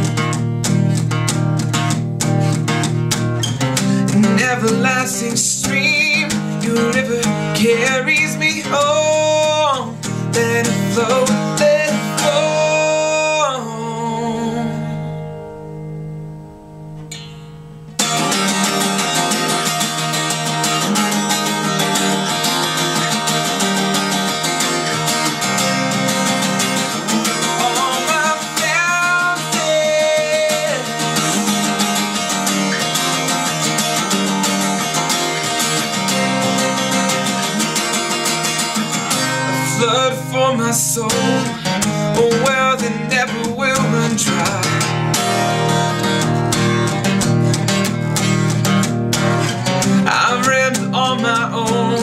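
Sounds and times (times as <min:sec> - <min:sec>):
acoustic guitar strumming: 0:00.0 - 0:52.0.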